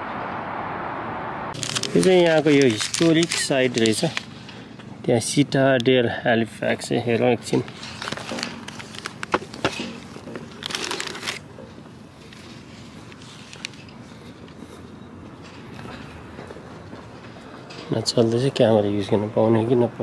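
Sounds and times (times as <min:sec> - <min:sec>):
low background noise: 0:00.0 - 0:20.0
rustle: 0:01.5 - 0:04.7.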